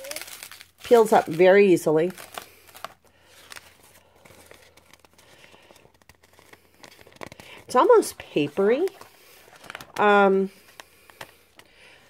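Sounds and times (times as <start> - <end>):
stiff paper napkin crinkling: 0.0 - 11.7.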